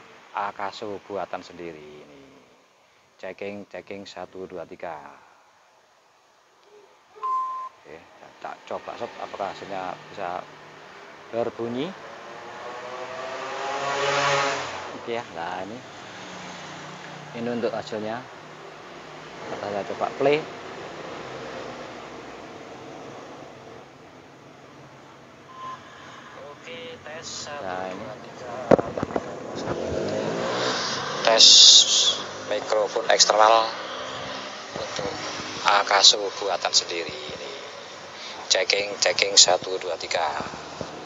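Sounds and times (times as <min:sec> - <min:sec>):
passing vehicle engine hum: 0:08.2 - 0:41.0.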